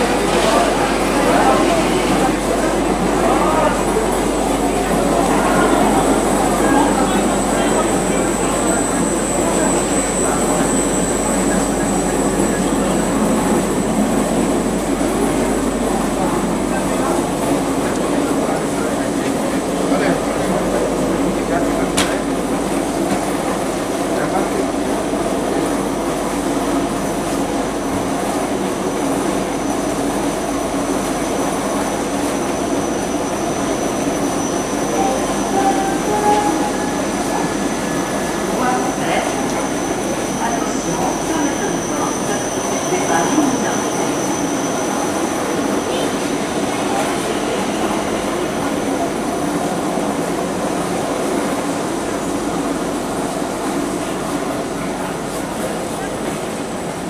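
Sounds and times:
scattered voices: 0.0s - 28.2s, 29.0s - 56.6s
train hum and hiss: 0.0s - 57.0s.

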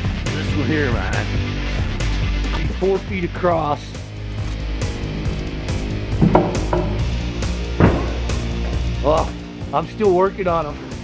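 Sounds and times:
rock music with drum beat: 0.0s - 11.0s.

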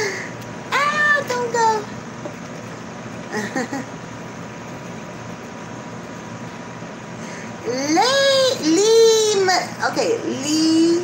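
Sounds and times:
faint hum: 0.0s - 11.0s
woman vocal sound: 7.6s - 9.1s.

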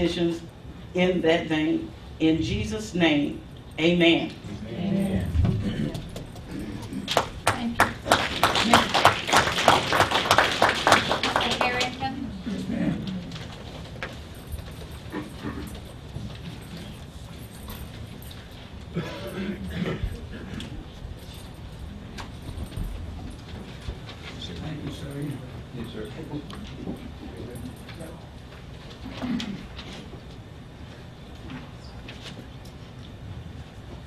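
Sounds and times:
low steady room hum: 0.0s - 34.0s.

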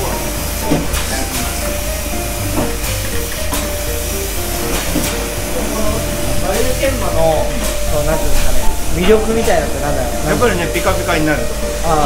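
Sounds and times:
polishing machine rushing hiss: 0.0s - 12.0s.

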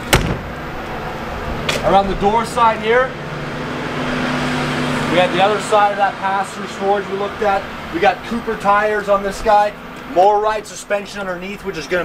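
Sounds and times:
noisy wash: 0.0s - 12.0s
vehicle engine hum: 0.0s - 12.0s.

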